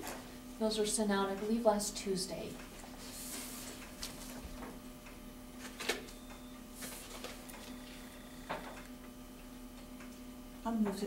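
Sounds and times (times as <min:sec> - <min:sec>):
low room hum: 0:00.0 - 0:11.0
paper sheets rustling: 0:03.0 - 0:04.6, 0:06.8 - 0:07.5.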